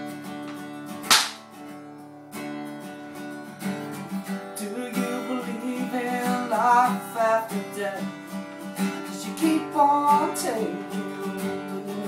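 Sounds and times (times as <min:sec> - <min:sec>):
acoustic guitar chords: 0:00.0 - 0:12.0
percussive slap on guitar: 0:00.4 - 0:01.7.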